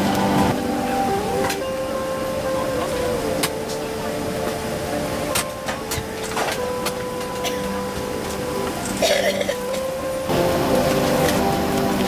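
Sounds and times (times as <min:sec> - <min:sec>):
murmur of passengers' voices: 0:00.0 - 0:12.0.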